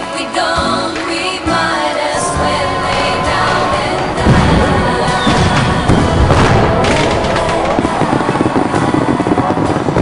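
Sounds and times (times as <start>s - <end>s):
fireworks crackling: 2.1s - 10.0s.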